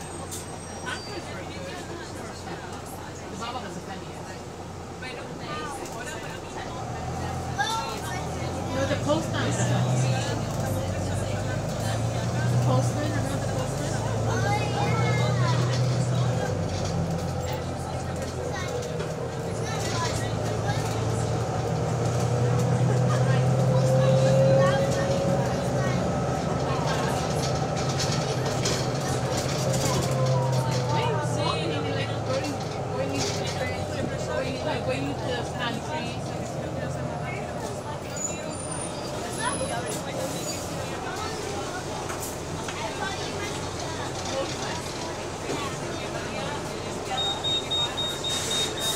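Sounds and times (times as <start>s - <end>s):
bus engine hum: 0.0s - 48.9s.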